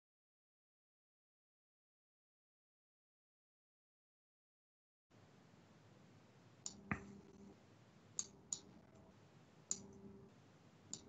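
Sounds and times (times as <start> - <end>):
faint sharp clicks: 6.6 - 7.5, 8.2 - 9.1, 9.7 - 10.0.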